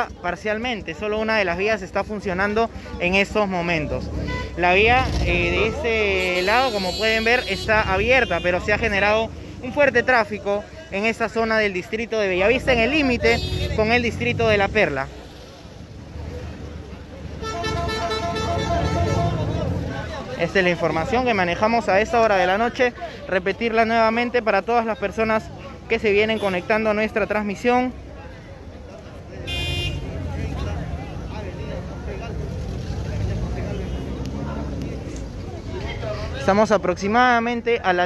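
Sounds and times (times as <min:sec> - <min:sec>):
low rumble of traffic: 0:00.0 - 0:38.0
people talking: 0:04.6 - 0:15.1.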